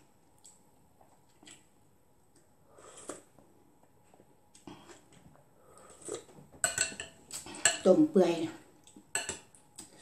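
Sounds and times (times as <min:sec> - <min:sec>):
metal spoon clinking on glass bowl: 0:06.6 - 0:07.9.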